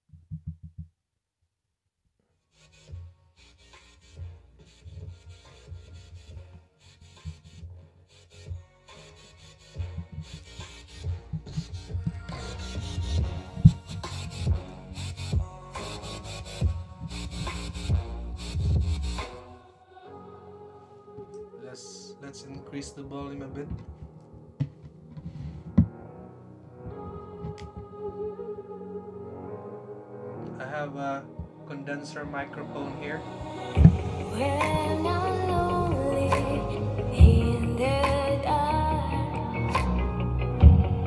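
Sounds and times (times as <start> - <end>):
music with strong bass beat: 9.8 - 19.4, 33.7 - 38.4, 39.8 - 41.0.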